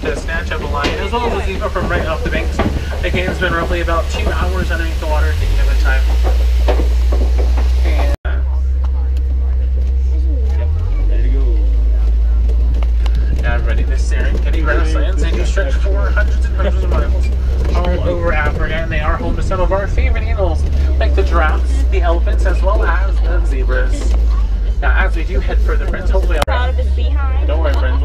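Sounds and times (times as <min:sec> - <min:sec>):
passengers talking: 0:00.0 - 0:28.0
truck rumbling along: 0:00.0 - 0:28.0.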